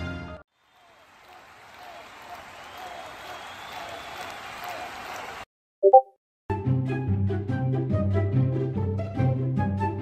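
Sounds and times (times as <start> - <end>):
crowd applause: 0.6 - 5.5.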